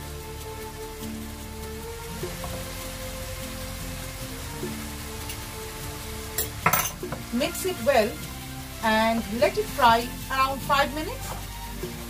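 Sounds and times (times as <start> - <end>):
meat frying in pan: 0.0 - 12.0
soft background music: 0.0 - 12.0.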